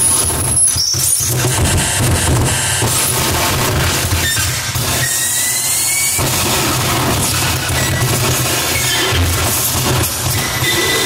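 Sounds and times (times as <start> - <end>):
distorted noise music: 0.0 - 11.0.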